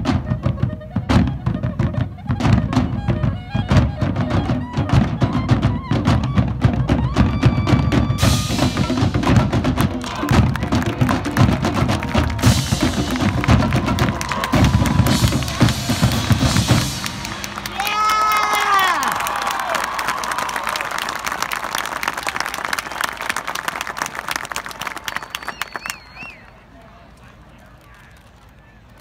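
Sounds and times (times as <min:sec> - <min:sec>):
marching band playing: 0:00.0 - 0:25.8
bass drums pounding: 0:07.8 - 0:17.9
crowd applauding: 0:09.3 - 0:29.0
crowd whooping and cheering: 0:10.0 - 0:26.7.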